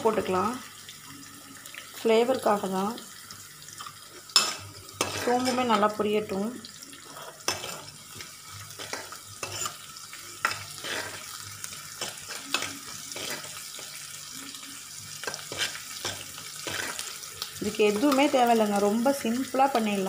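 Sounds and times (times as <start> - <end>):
onions sizzling in oil: 0.0 - 20.0
ladle scraping pan: 4.3 - 5.8, 8.8 - 9.8, 10.4 - 11.4, 15.3 - 17.0.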